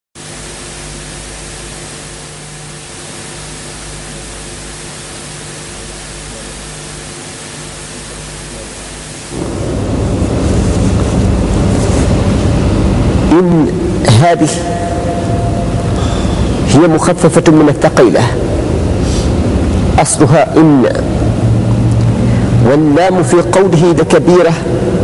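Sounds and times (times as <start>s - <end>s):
low electrical hum: 0.2s - 25.0s
recording noise hiss: 0.2s - 25.0s.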